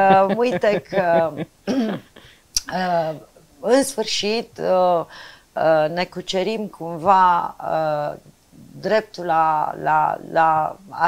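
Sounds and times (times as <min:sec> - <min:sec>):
woman speaking: 0:00.0 - 0:01.4, 0:02.6 - 0:11.0
woman clearing throat: 0:00.1 - 0:02.1.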